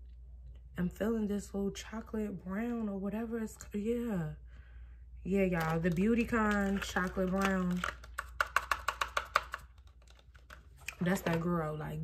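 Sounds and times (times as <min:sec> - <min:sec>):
nails tapping on plastic box: 0:06.6 - 0:10.5.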